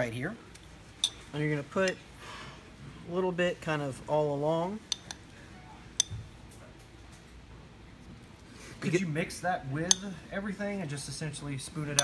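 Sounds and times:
glass clink: 6.0 - 6.3, 9.8 - 10.2.

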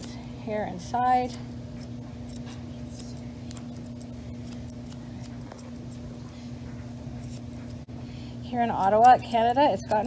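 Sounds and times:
scissors snipping fur: 0.0 - 0.3, 1.0 - 7.9, 8.6 - 10.0
steady low hum: 0.0 - 10.0.

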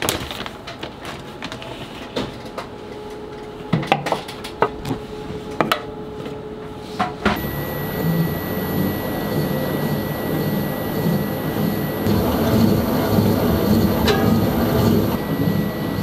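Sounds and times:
stand mixer motor whine: 7.4 - 16.0.

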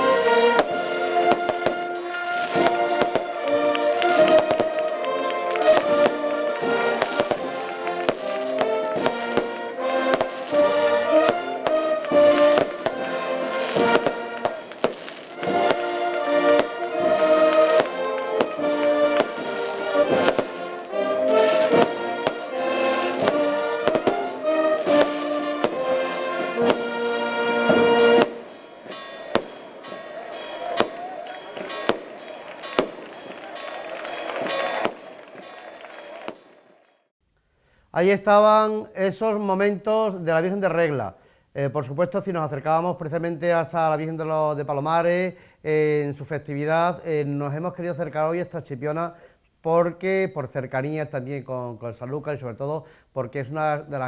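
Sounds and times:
brass band music: 0.0 - 36.8
fireworks bangs and cracks: 0.0 - 36.9.

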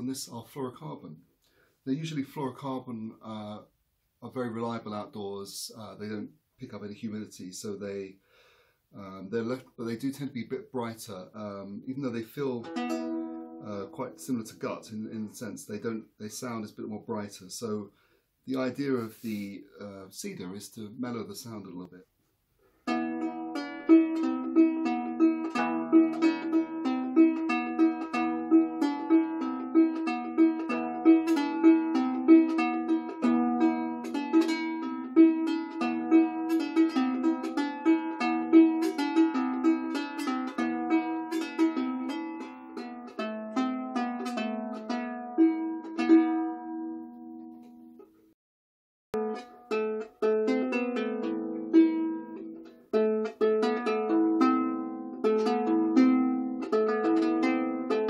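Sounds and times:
lyre plucked notes: 8.9 - 17.8, 22.8 - 48.2, 49.2 - 58.0.

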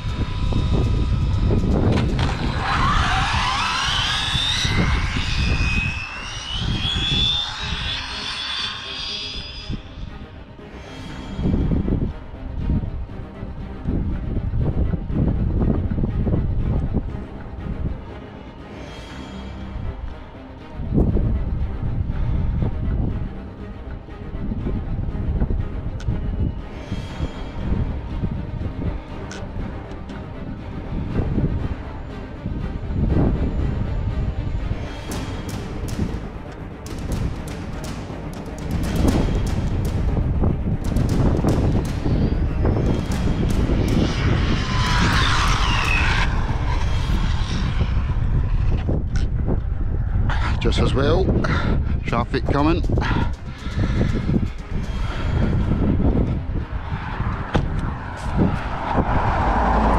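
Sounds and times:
wind buffeting microphone: 0.0 - 7.9, 11.4 - 18.2, 20.8 - 59.9
rc car electric motor whine: 0.0 - 10.1
music playing: 0.0 - 59.7.

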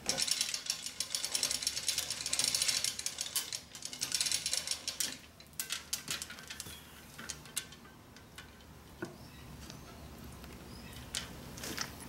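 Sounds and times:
chain hoist rattling clicks: 0.0 - 8.9.

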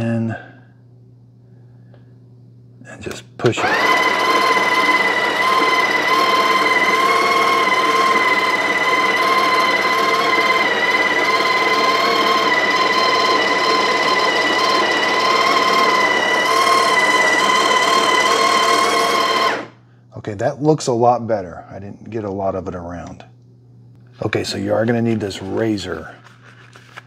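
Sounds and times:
coffee grinder motor whine: 3.5 - 19.8.

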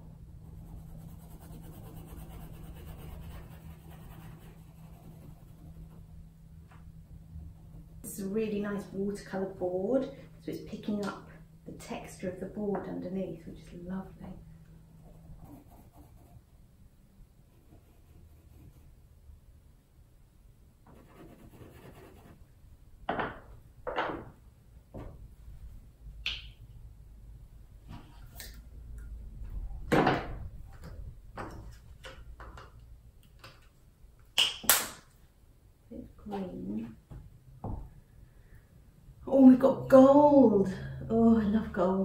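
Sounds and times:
objects knocking and scraping on table: 23.1 - 24.3.

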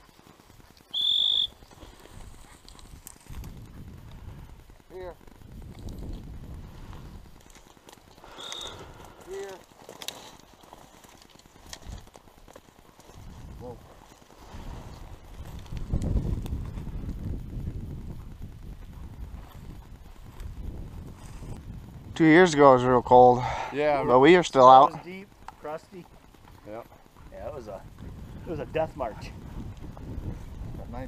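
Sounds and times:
footsteps through dry grass: 0.0 - 22.1
low microphone rumble: 13.2 - 22.2.

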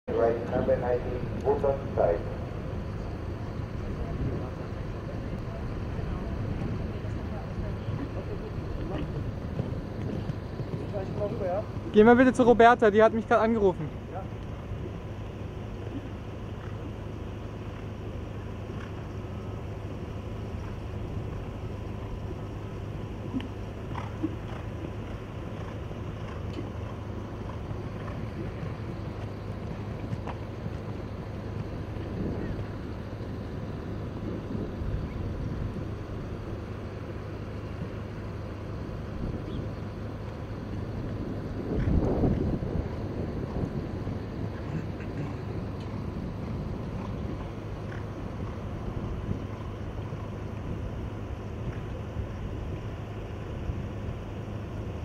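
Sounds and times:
low rumble: 0.1 - 55.0
wind on microphone: 3.2 - 10.8, 31.6 - 36.7, 40.7 - 55.0.

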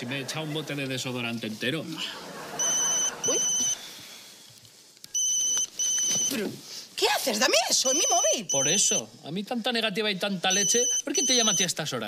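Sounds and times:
mobile phone electronic ringtone: 2.6 - 3.8, 5.2 - 6.3, 7.8 - 9.0, 10.5 - 11.7.

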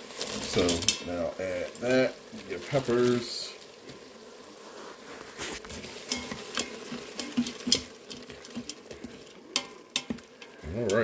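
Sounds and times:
peppers sizzling in hot oil: 0.0 - 11.0
spatula scraping a pot: 5.1 - 11.0.

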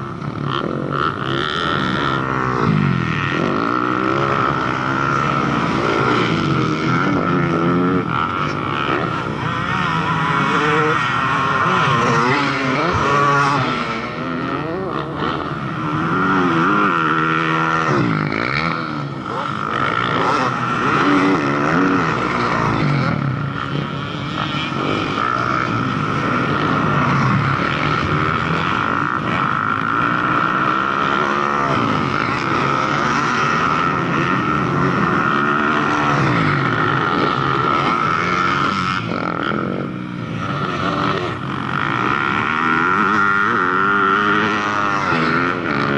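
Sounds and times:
dirt bike engines revving: 0.0 - 45.9
steady high whine: 0.0 - 45.9.

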